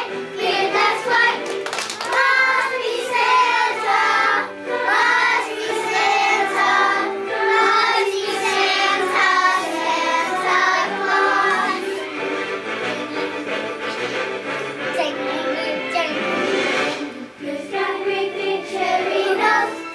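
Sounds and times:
children singing in chorus: 0.0 - 12.1, 16.8 - 19.9.

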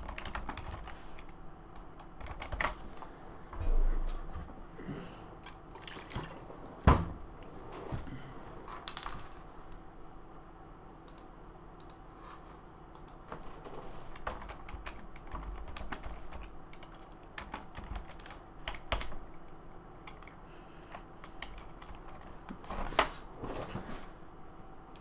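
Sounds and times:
computer keyboard typing: 0.0 - 3.0, 12.9 - 20.4, 21.2 - 22.3.

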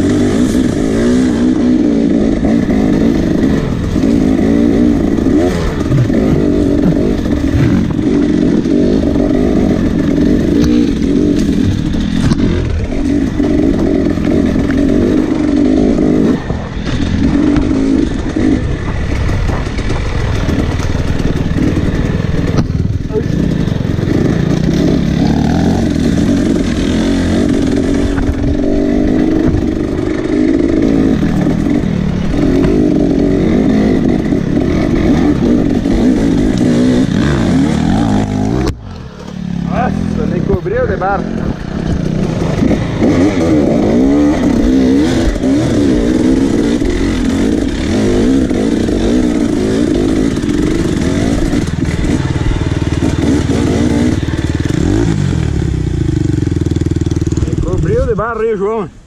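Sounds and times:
dirt bike engine revving: 0.0 - 58.8
bike knocks and clatter: 18.3 - 21.8, 22.4 - 23.2.

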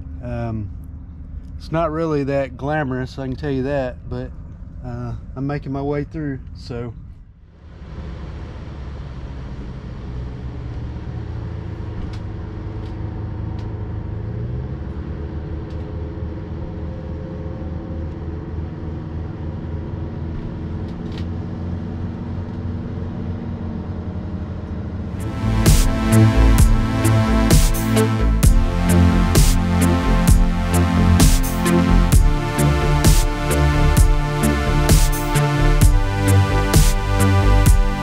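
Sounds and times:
boat engine rumbling: 0.0 - 7.1, 7.7 - 38.0.

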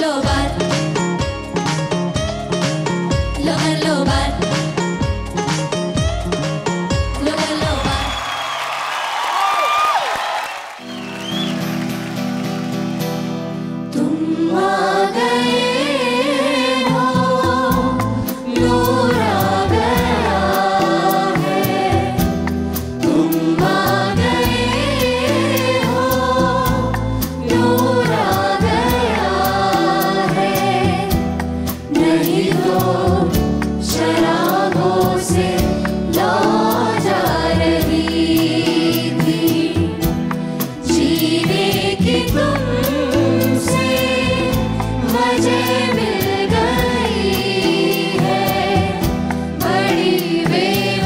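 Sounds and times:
group of voices singing: 0.0 - 0.9, 3.4 - 4.7, 7.2 - 8.2, 13.9 - 51.0
live backing music with beat: 0.0 - 51.0.

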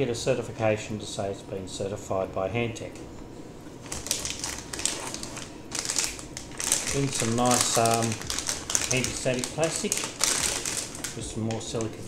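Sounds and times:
plastic bag crinkling: 3.8 - 12.0.

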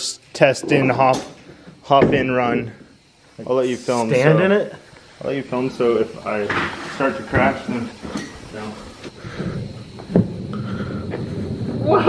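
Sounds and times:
wheels rumbling on concrete: 9.3 - 12.0
thump: 9.5 - 10.4.

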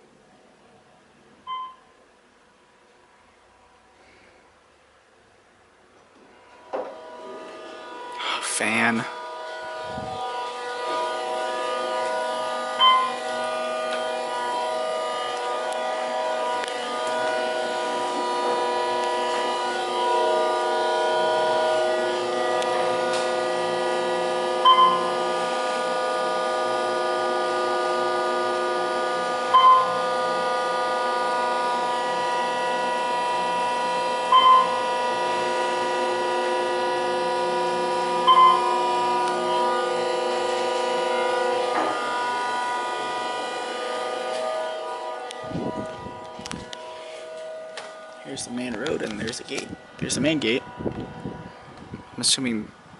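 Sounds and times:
elevator whining hum: 0.0 - 52.9
short electronic beeps: 1.5 - 1.9, 12.8 - 13.2, 24.6 - 25.1, 29.5 - 30.0, 34.3 - 34.8, 38.3 - 38.7.

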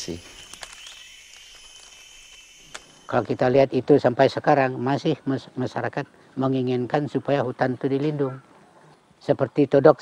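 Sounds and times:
faint outdoor background hiss: 0.0 - 10.0
sharp click: 0.4 - 2.9.

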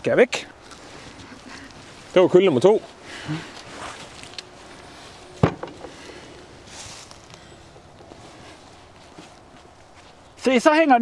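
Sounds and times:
faint rustling: 0.6 - 10.5.

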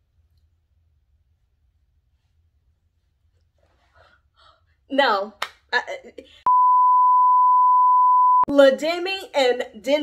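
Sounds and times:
steady test tone beep: 6.5 - 8.5.

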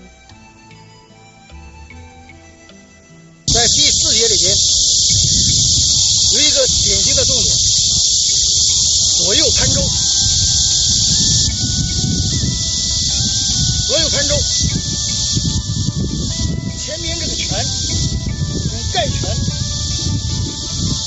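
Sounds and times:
person's voice: 3.5 - 4.8, 6.0 - 10.1, 13.9 - 14.6, 16.8 - 17.8
high-pitched insect hiss: 3.5 - 21.0.

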